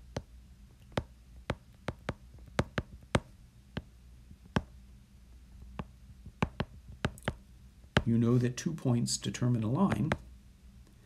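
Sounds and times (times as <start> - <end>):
faint steady hum: 0.0 - 11.0
stylus tapping on glass screen: 0.9 - 3.9, 5.8 - 7.4.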